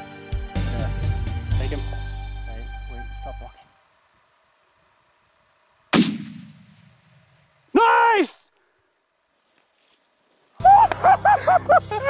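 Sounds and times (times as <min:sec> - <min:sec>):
rifle shot with echo: 0:05.9 - 0:07.2.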